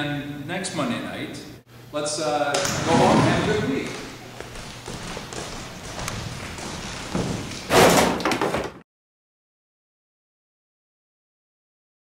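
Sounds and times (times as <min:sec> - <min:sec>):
door slamming: 0:02.6 - 0:04.2, 0:05.9 - 0:08.8.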